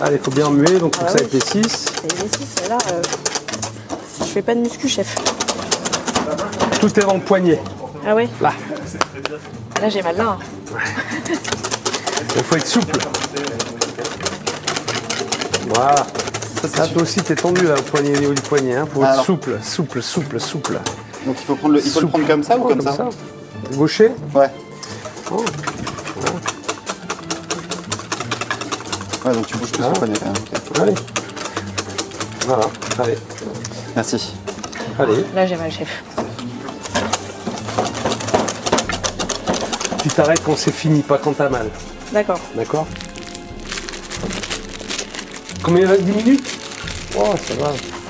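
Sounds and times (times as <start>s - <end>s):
whisk beating in metal bowl: 0.0s - 3.8s, 11.3s - 19.0s, 25.0s - 34.3s, 36.9s - 40.9s.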